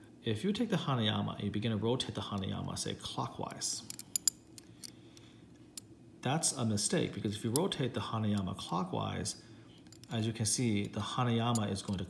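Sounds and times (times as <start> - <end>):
metal puzzle pieces clicking: 3.8 - 5.9, 9.8 - 10.2.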